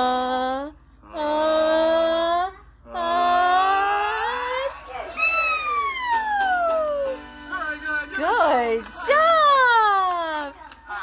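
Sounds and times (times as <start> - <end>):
music: 4.6 - 11.0.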